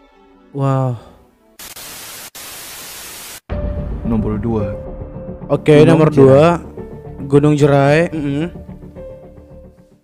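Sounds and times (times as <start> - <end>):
television static hiss: 1.6 - 3.5.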